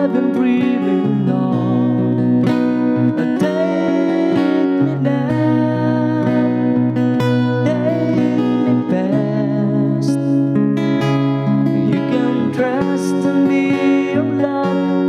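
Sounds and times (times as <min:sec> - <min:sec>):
man singing: 0:00.0 - 0:10.6, 0:11.7 - 0:15.0
strummed acoustic guitar: 0:00.0 - 0:15.0.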